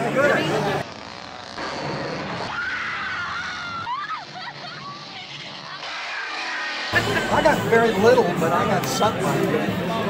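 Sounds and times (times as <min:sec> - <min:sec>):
woman screaming: 0:02.5 - 0:04.5.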